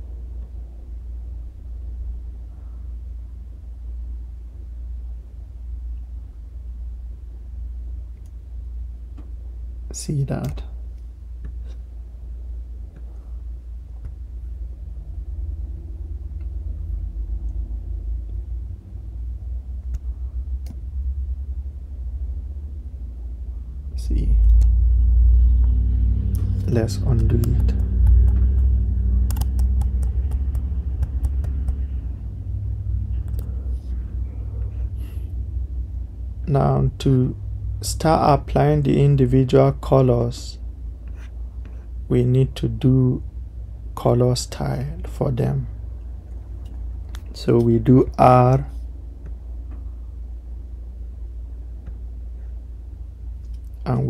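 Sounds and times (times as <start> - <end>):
low background hum: 0.0 - 54.0
loud low rumble: 12.0 - 54.0
sharp clicks: 29.3 - 31.8.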